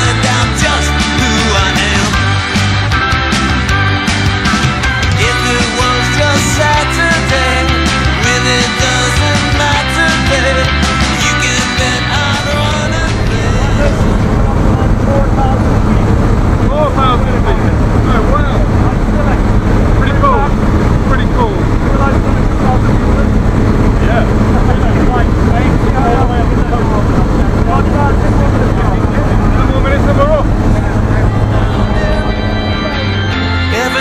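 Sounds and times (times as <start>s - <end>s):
aircraft engine drone: 0.0s - 34.0s
people talking: 5.2s - 34.0s.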